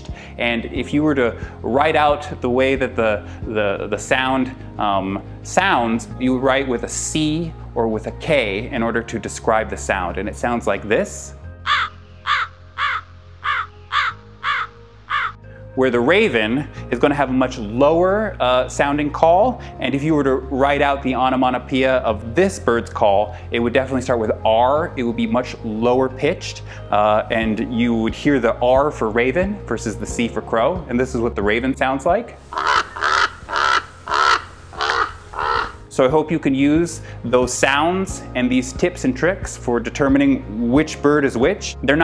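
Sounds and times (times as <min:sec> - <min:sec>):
crow cawing: 0:11.6 - 0:15.4, 0:32.5 - 0:35.8
raven calling: 0:11.6 - 0:15.5, 0:32.4 - 0:35.9.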